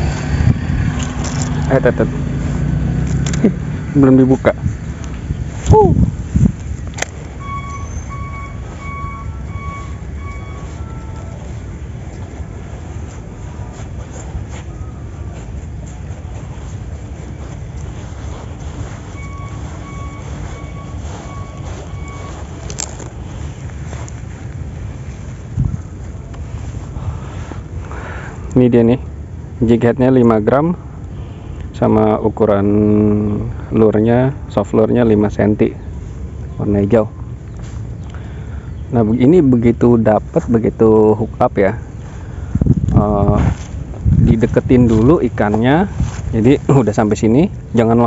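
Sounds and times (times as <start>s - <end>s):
wind buffeting microphone: 0.0s - 29.6s, 40.2s - 48.0s
high piping notes: 3.6s - 27.2s.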